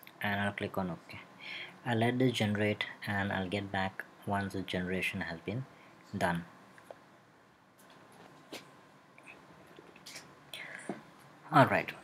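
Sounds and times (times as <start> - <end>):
low hiss: 0.0 - 12.0
man breathing into microphone: 1.3 - 1.8.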